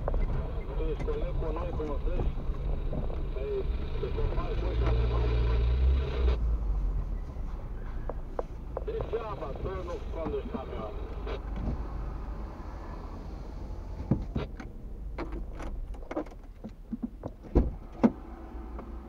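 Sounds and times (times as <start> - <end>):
car engine idling: 0.0 - 19.0
sharp clicks and knocks: 14.0 - 18.9.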